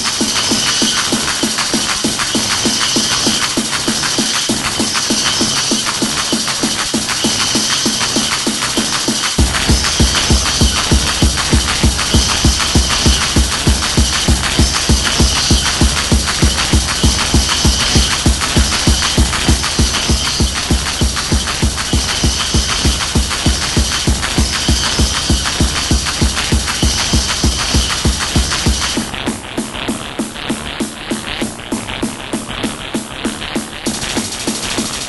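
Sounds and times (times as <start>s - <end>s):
high-pitched synth: 0.0s - 29.2s
fast kick drum: 0.0s - 35.0s.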